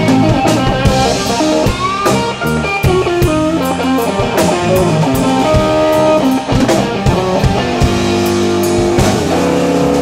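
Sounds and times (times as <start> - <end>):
blues band playing live: 0.0 - 10.0
drum hits: 0.0 - 10.0.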